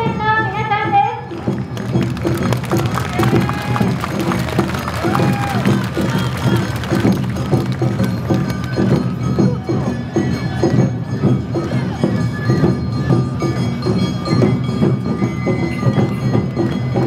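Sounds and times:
festival melody: 0.0s - 17.0s
drums beating quick rhythm: 0.4s - 17.0s.

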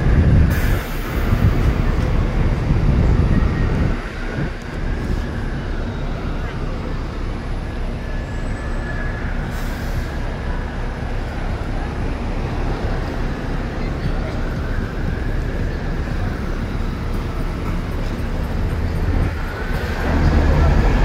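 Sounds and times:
bus engine and road rumble: 0.0s - 21.0s.

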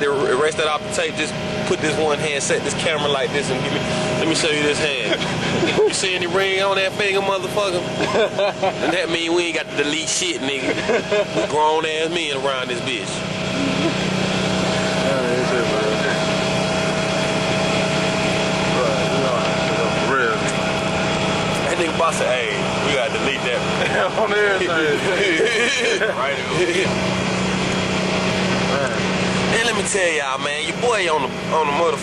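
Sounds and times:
bus engine and ride noise: 0.0s - 32.0s
road noise: 0.0s - 32.0s.

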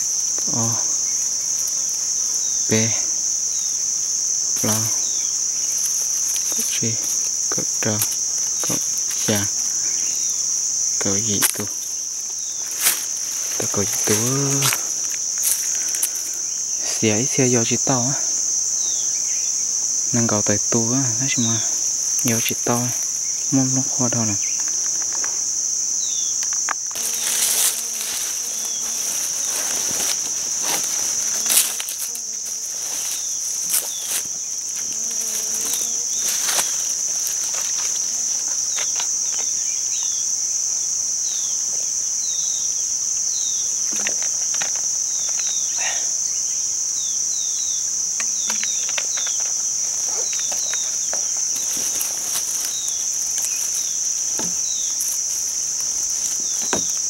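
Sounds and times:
rustling in dry leaves: 0.0s - 39.8s, 47.8s - 57.0s
high-pitched insect drone: 0.0s - 57.0s.

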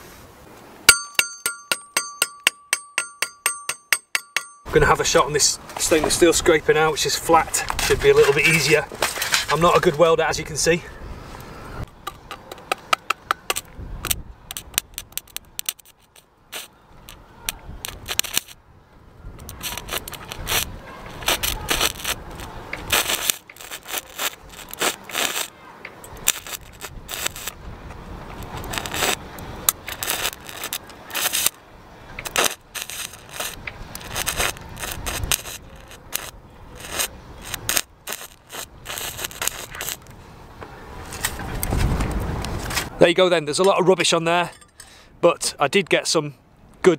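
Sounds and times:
rapid ticking of welding rod: 0.9s - 4.7s, 17.9s - 18.6s, 19.4s - 27.6s, 28.4s - 31.6s, 32.2s - 40.1s
welding arc crackling: 14.5s - 17.2s, 17.8s - 18.6s, 19.4s - 27.6s, 28.4s - 40.1s.

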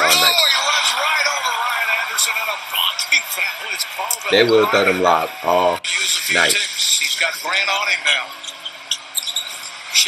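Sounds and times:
arena crowd noise: 0.0s - 10.0s
shoe squeaks on court: 8.4s - 10.0s.

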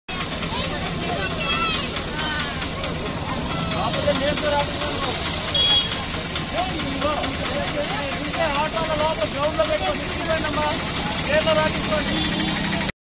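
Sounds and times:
people talking: 0.1s - 12.9s.

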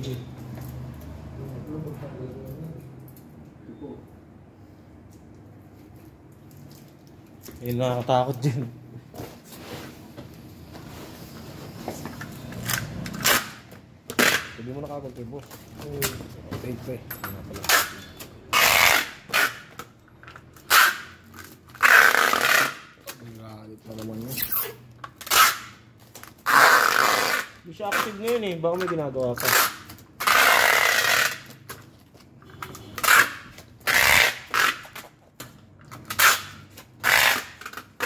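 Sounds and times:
packing tape pulled off dispenser: 12.6s - 14.6s, 17.6s - 19.9s, 20.6s - 23.2s, 24.1s - 28.4s, 29.4s - 31.9s, 32.7s - 38.0s.

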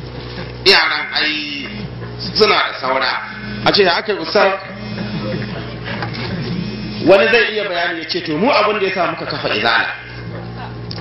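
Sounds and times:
steady low hum: 0.0s - 11.0s
faint voices: 1.7s - 7.7s.

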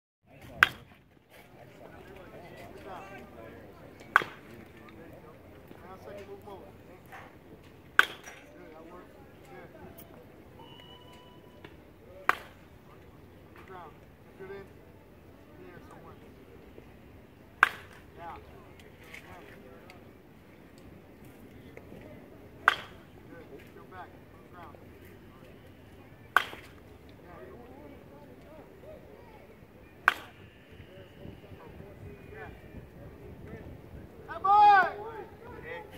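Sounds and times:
faint chattering voices: 0.2s - 35.9s
baseball bat cracking balls: 0.5s - 0.9s, 4.0s - 4.6s, 8.0s - 8.4s, 12.2s - 12.6s, 17.6s - 18.1s, 22.6s - 23.1s, 26.4s - 26.8s, 30.1s - 30.4s.

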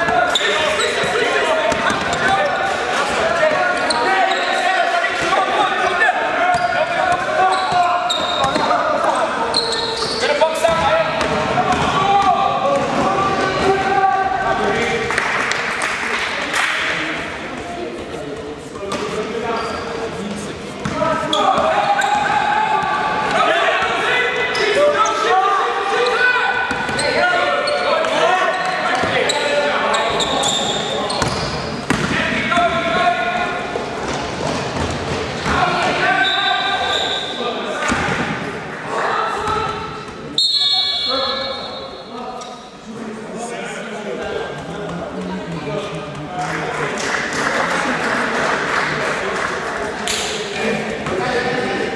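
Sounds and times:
voices echoing in sports hall: 0.0s - 51.9s
basketball bouncing on court floor: 10.0s - 12.0s, 31.2s - 32.2s.

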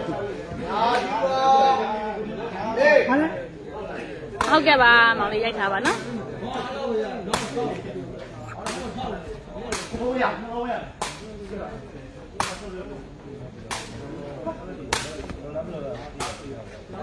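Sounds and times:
murmur of crowd voices: 0.0s - 17.0s.

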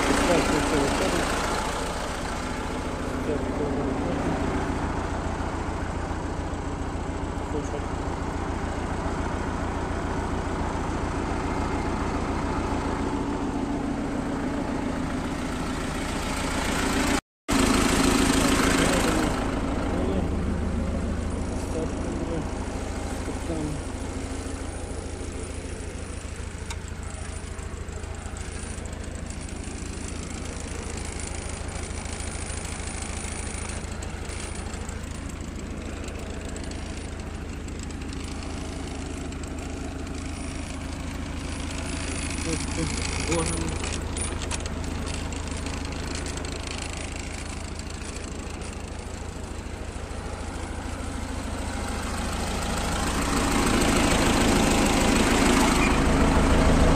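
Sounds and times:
tractor diesel engine running: 0.0s - 56.9s.

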